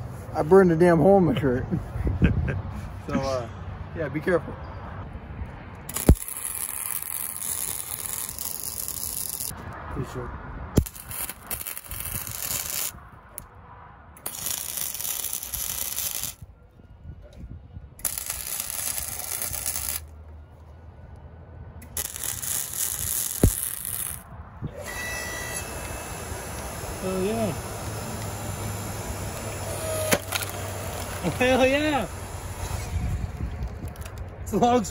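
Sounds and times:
welder arc crackling: 0:05.9 - 0:09.6, 0:10.8 - 0:13.0, 0:14.2 - 0:16.4, 0:18.0 - 0:20.1, 0:21.8 - 0:24.3, 0:25.3 - 0:34.3
log splitter motor humming: 0:24.7 - 0:34.2.

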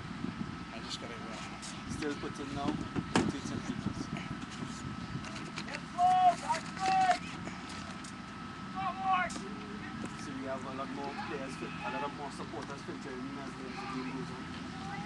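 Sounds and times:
field background noise: 0:00.0 - 0:15.0
quiet voices talking: 0:00.7 - 0:15.0.

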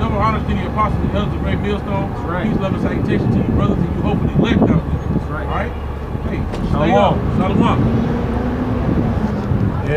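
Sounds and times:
men talking: 0:00.0 - 0:09.9
street traffic rumble: 0:00.0 - 0:09.9.

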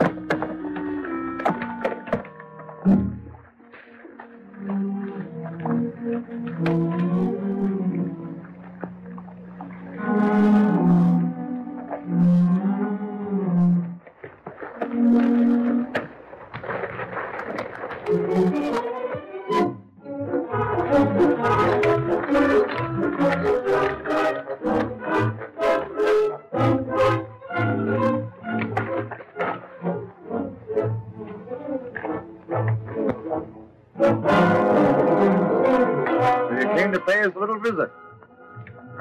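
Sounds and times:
dramatic brass film music: 0:09.8 - 0:13.8, 0:18.0 - 0:39.0.

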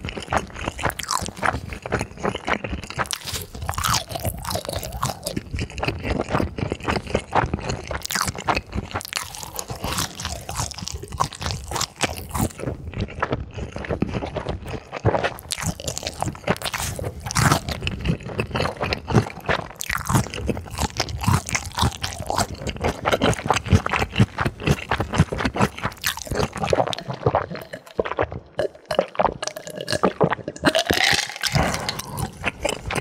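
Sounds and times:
chewing ice: 0:00.0 - 0:33.0.

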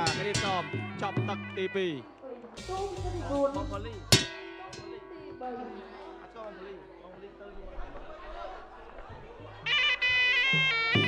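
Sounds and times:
low drum notes: 0:00.0 - 0:01.6, 0:02.6 - 0:04.9
shrill reedy oboe melody: 0:09.6 - 0:11.0.

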